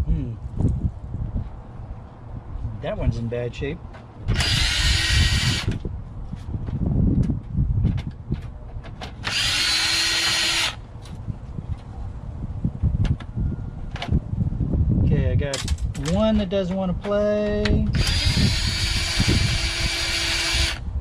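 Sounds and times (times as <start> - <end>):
power driver spinning: 9.2 - 10.8, 17.9 - 20.8.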